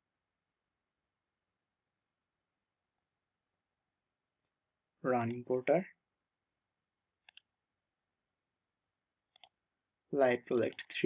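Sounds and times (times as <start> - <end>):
computer mouse clicks: 7.2 - 7.5, 9.3 - 9.6, 10.5 - 11.0.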